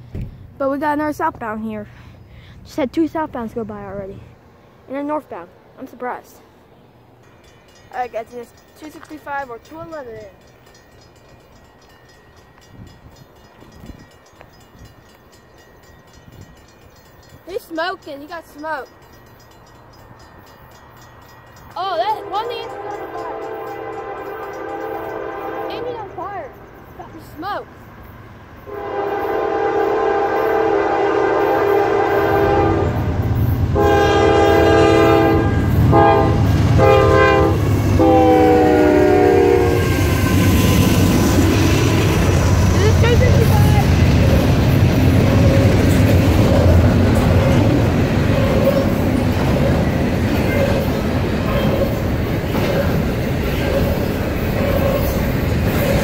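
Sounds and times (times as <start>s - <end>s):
distant freight train rumble: 0.0s - 56.0s
train air horn: 22.2s - 26.1s, 28.7s - 33.1s, 33.8s - 41.0s.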